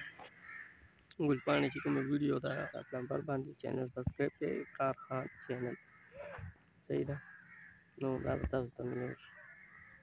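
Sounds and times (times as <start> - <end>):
man speaking: 1.2 - 5.8, 8.0 - 9.2
short bird call: 5.9 - 6.6.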